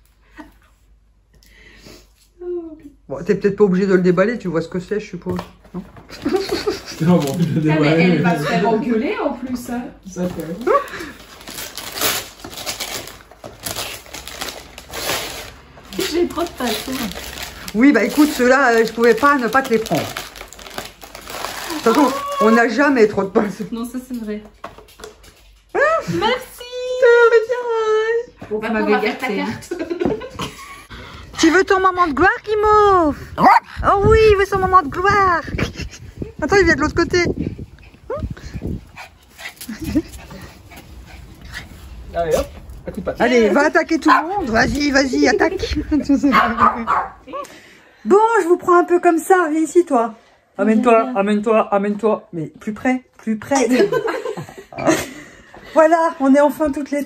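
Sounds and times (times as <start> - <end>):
wrapping paper rustling and crinkling: 5.8 - 7.8, 10.1 - 23.1
small dog barking and yipping: 44.1 - 44.5, 46.3 - 47.2.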